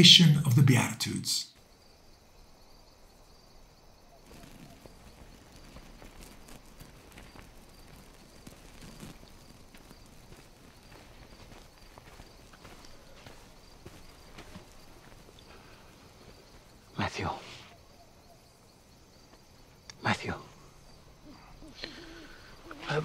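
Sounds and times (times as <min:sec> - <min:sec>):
night-time outdoor ambience: 0:00.0 - 0:23.0.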